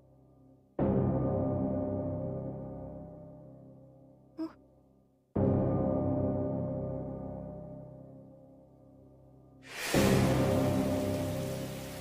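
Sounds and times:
heavy rain: 9.7s - 12.0s.

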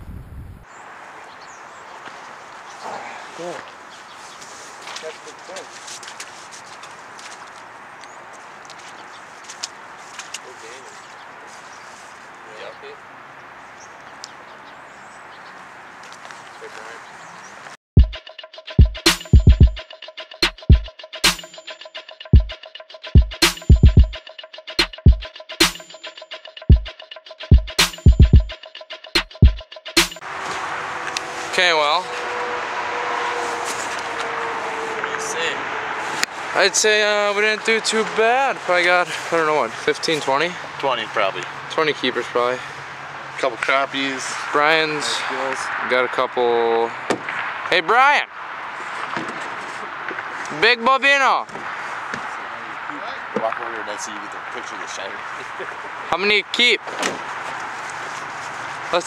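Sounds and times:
motor vehicle running: 30.2s - 36.6s
distant voices: 30.3s - 47.7s
steady outdoor hiss: 35.2s - 59.0s.

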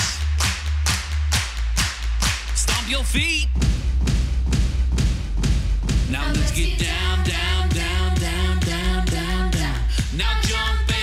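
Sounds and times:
backing track with bass: 0.0s - 11.0s.

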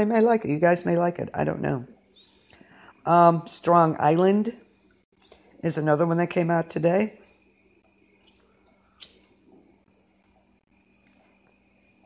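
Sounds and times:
faint background hum: 0.0s - 12.0s.

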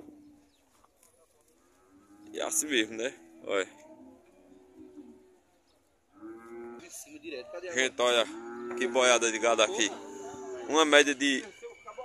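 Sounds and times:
cattle mooing: 1.6s - 5.5s, 6.1s - 12.0s.

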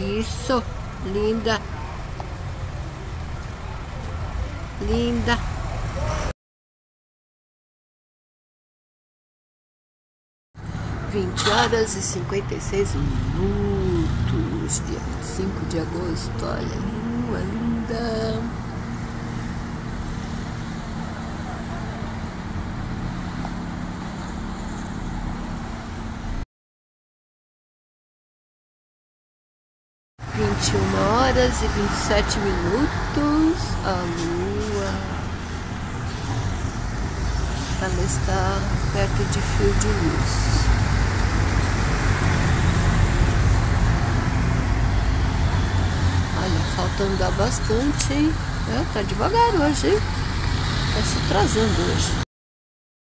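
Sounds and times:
road traffic rumble: 0.0s - 6.4s, 10.6s - 26.4s, 30.2s - 52.3s.

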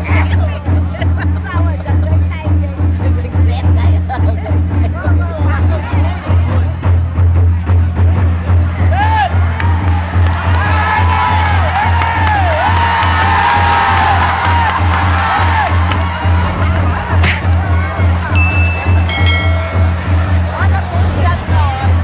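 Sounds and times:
drums beating a rhythm: 0.0s - 22.0s
crowd cheering and shouting: 5.2s - 22.0s.

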